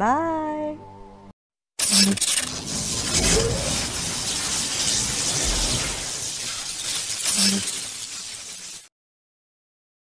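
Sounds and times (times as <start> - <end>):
electric spark crackling: 1.8 - 8.9.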